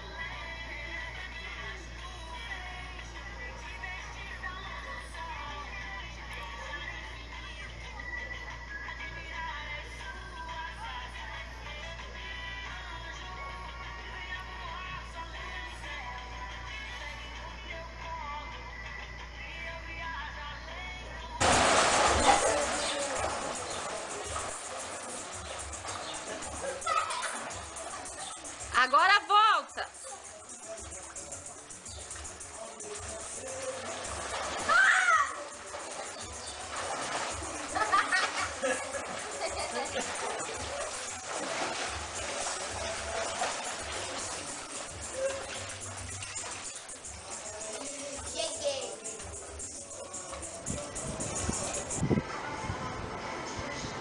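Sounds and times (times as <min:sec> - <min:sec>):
faint music: 0:00.0 - 0:54.0
children splashing in pool: 0:21.4 - 0:28.7, 0:33.0 - 0:49.1
faint voices: 0:21.8 - 0:54.0.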